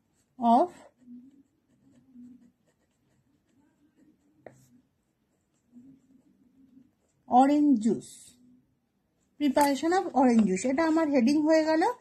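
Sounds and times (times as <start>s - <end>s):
ballpoint pen scratching on paper: 0.0s - 7.9s.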